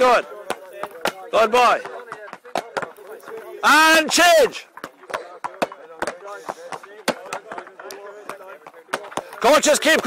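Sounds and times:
balls bouncing on tarmac: 0:00.0 - 0:10.0
sticks striking balls: 0:00.0 - 0:10.0.

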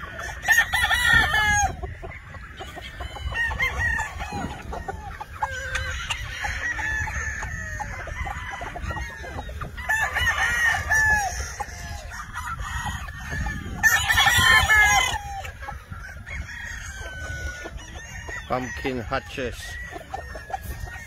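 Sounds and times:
rooster crowing: 0:00.0 - 0:01.8, 0:02.9 - 0:21.0
chickens clucking and calling: 0:00.0 - 0:21.0.

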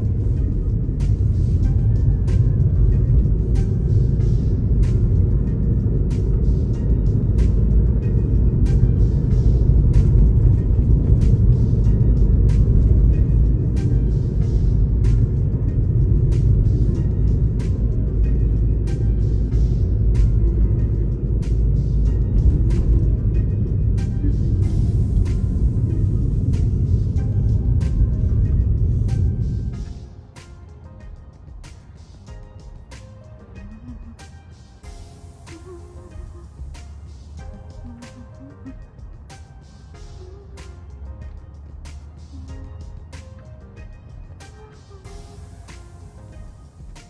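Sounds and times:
road rumble inside car: 0:00.0 - 0:30.0, 0:34.8 - 0:47.0
music with regular beat: 0:00.0 - 0:47.0.

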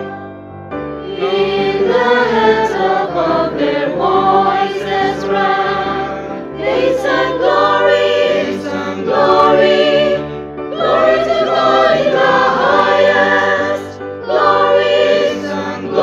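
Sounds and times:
mixed choir singing: 0:00.0 - 0:00.3, 0:01.0 - 0:16.0.

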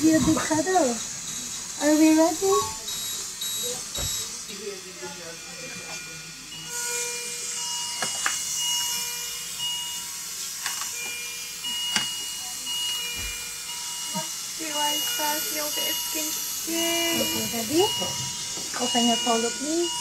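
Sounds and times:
electronic monitor beeps: 0:02.5 - 0:04.6.

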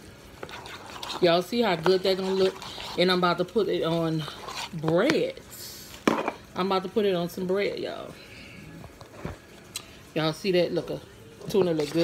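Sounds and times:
metal spoon in a bowl: 0:00.4 - 0:03.6, 0:11.5 - 0:12.0.

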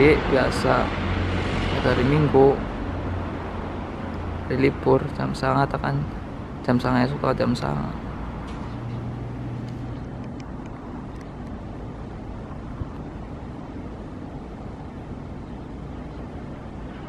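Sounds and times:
low rumble of street traffic: 0:00.0 - 0:17.0.

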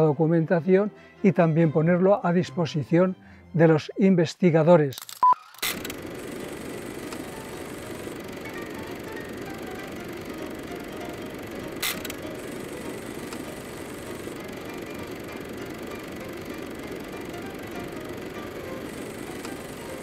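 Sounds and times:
sharp click: 0:04.9 - 0:08.1, 0:11.8 - 0:12.3, 0:12.9 - 0:14.3
film projector whirring: 0:05.0 - 0:20.0.

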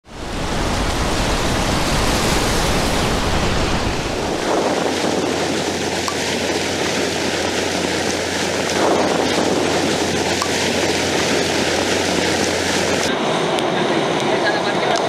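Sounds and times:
deep rumble: 0:00.0 - 0:13.1
surf on a pebble beach: 0:00.0 - 0:15.0.

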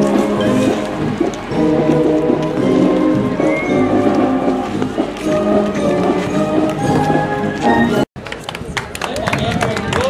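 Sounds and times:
brass chords: 0:00.0 - 0:08.0
drum strokes: 0:00.0 - 0:08.0.

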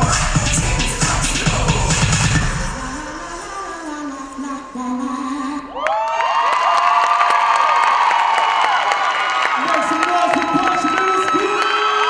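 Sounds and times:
scattered clapping: 0:05.9 - 0:12.0.

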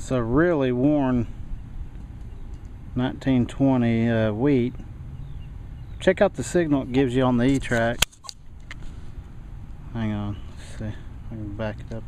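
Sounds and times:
low steady background: 0:00.0 - 0:12.0
camera handling noise: 0:07.4 - 0:09.0
sharp click: 0:07.5 - 0:08.8.

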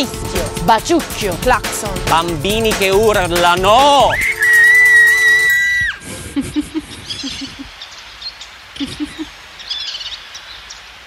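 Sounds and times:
person screaming high-pitched: 0:04.2 - 0:06.0.

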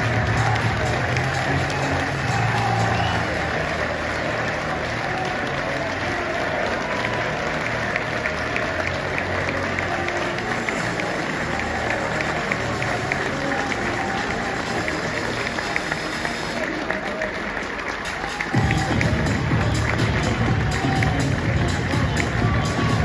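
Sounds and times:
crowd applauding and cheering: 0:00.0 - 0:23.0
music playing: 0:00.0 - 0:23.0.

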